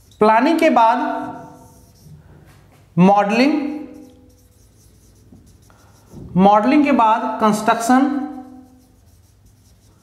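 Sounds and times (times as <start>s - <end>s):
person speaking: 0.0s - 2.2s, 3.0s - 9.9s
marker writing on whiteboard: 0.0s - 10.0s.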